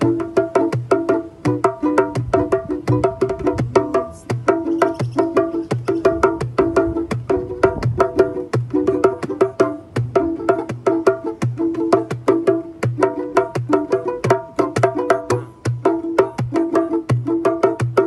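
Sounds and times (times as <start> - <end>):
banjo plucked fast: 0.0 - 18.0
hand drum beat: 0.0 - 18.0.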